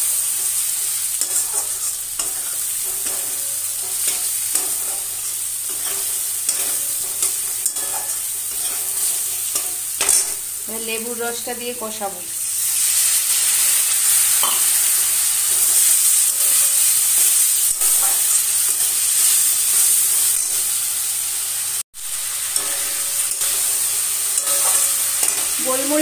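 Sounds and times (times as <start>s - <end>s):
food sizzling in hot oil: 0.0s - 26.0s
metal spatula scraping pan: 1.2s - 10.4s, 22.4s - 26.0s.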